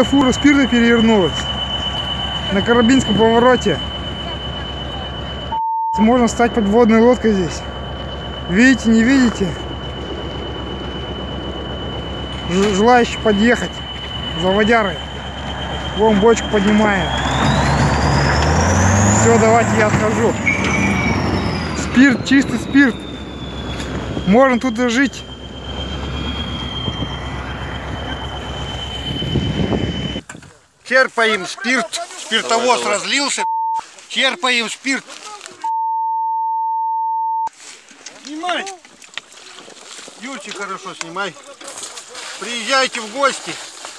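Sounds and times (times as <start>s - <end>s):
man talking: 0.0s - 1.4s, 2.5s - 3.8s, 6.0s - 7.6s, 8.5s - 9.6s, 12.4s - 15.0s, 16.0s - 17.2s, 19.2s - 20.4s, 21.8s - 23.0s, 24.2s - 25.2s, 30.9s - 33.5s, 34.1s - 35.7s, 42.4s - 43.6s
censor bleep: 0.0s - 30.2s, 33.1s - 33.9s, 35.6s - 37.5s
high whine rising in pitch: 0.0s - 30.2s
heavy vehicle engine rumbling: 0.0s - 30.4s.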